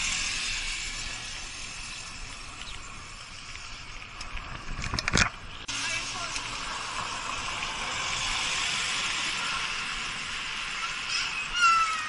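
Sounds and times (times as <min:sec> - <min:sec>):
passing traffic: 0:00.0 - 0:12.0
road noise from bicycle: 0:00.0 - 0:12.0.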